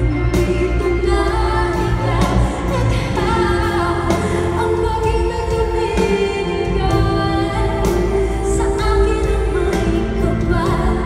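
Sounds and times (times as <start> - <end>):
band accompaniment: 0.0 - 11.0
woman singing into microphone: 0.0 - 11.0.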